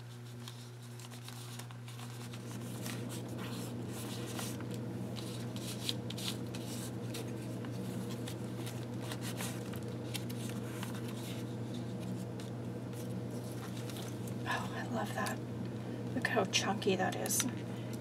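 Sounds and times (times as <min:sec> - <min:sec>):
paper rustling and crinkling: 0:00.0 - 0:14.6
steady low hum: 0:00.0 - 0:18.0.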